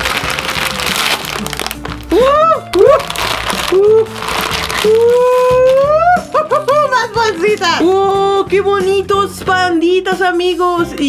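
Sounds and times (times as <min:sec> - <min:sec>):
plastic wrapper crinkling: 0:00.0 - 0:08.2
background music: 0:00.0 - 0:11.0.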